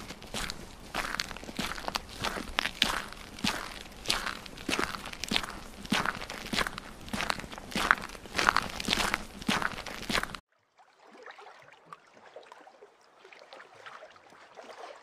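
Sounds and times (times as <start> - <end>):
footsteps walking: 0.0 - 10.4.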